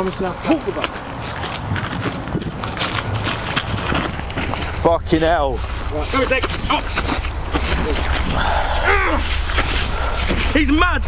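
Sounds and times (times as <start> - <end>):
feet crunching on gravel: 0.1 - 10.6
clothing rustling: 1.0 - 10.6.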